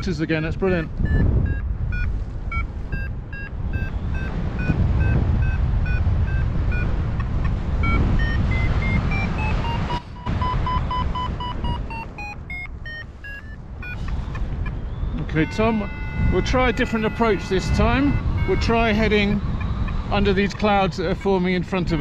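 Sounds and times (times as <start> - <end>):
wind on microphone: 0.0 - 22.0
variometer short pitched beeps: 0.8 - 7.0, 7.8 - 14.4, 15.1 - 19.7.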